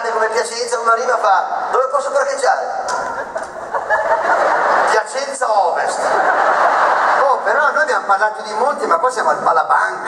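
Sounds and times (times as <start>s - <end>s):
audience laughing: 2.9s - 7.9s.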